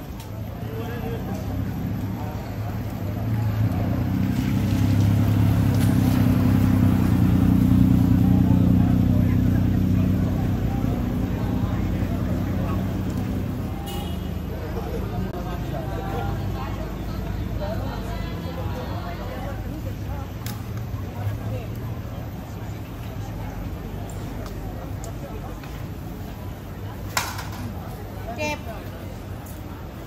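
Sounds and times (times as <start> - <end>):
people's voices: 0.0 - 30.0
vehicle engine running: 0.7 - 13.8.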